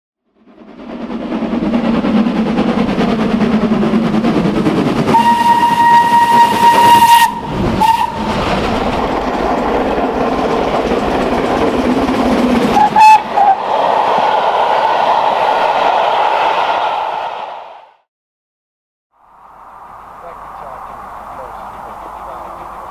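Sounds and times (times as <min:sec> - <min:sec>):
steam locomotive running: 0:00.3 - 0:17.9, 0:20.0 - 0:22.9
steam whistle blasts: 0:05.1 - 0:08.3, 0:12.8 - 0:13.6.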